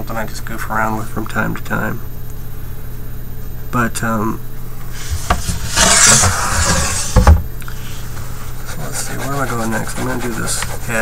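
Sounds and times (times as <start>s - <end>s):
paper rubbing across table: 4.9s - 7.4s, 8.2s - 11.0s.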